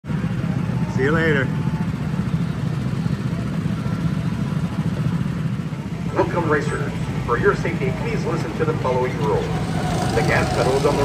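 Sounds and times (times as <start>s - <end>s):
go-kart engines droning: 0.0s - 11.0s.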